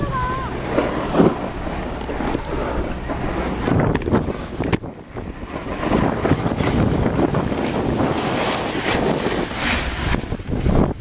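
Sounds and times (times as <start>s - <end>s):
skis sliding on packed snow: 0.0s - 11.0s
wind buffeting microphone: 0.0s - 11.0s.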